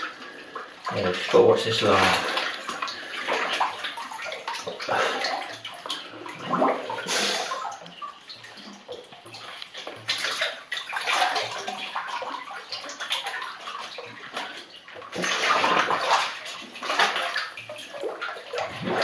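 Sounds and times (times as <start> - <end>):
water sloshing and splashing: 0.0 - 19.0.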